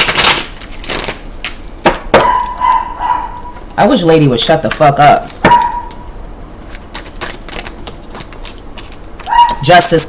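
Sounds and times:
person speaking: 0:03.7 - 0:05.7, 0:09.3 - 0:10.0
cards being shuffled: 0:06.6 - 0:09.6.

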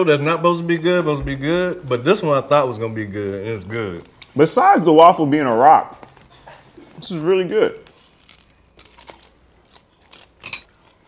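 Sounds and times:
crunching bites into crisp food: 0:07.9 - 0:11.0.

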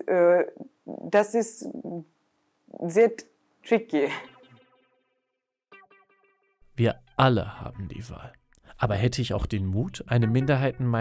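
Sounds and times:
man speaking: 0:06.8 - 0:11.0.

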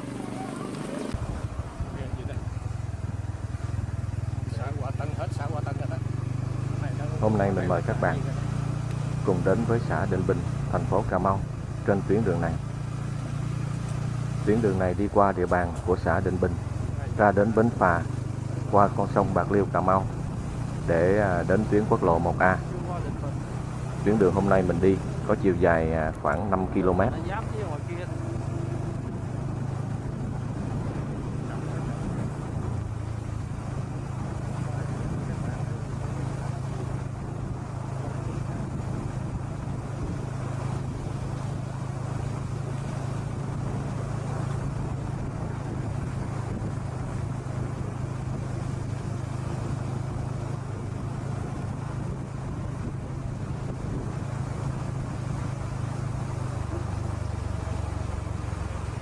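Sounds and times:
road and wind noise: 0:00.0 - 0:59.0
vehicle engine drone: 0:00.0 - 0:59.0.

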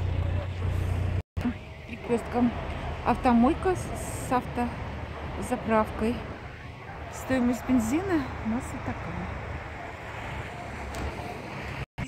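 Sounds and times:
outdoor hum: 0:00.0 - 0:11.9
street traffic rumble: 0:00.0 - 0:11.9.

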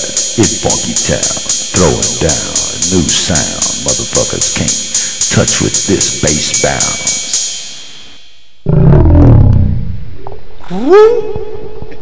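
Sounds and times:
slowed deep male voice: 0:00.0 - 0:07.3
hip-hop beat with hi-hat: 0:00.0 - 0:08.6.

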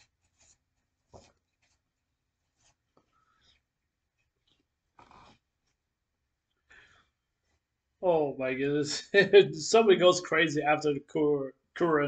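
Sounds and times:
paper rustling: 0:00.0 - 0:05.8.

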